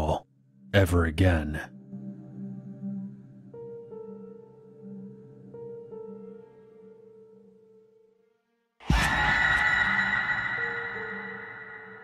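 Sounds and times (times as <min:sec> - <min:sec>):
quiet ambient music: 0:00.0 - 0:12.0
soft ambient drone: 0:08.9 - 0:12.0.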